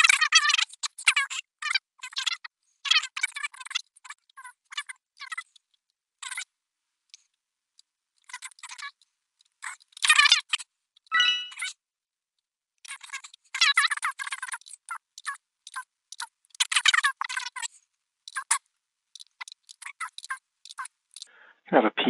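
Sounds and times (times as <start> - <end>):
fast-forwarded garbled speech: 0.0 - 5.6, 8.2 - 9.0, 9.6 - 10.6, 12.9 - 17.7, 18.3 - 18.6, 19.2 - 20.9, 21.7 - 22.0.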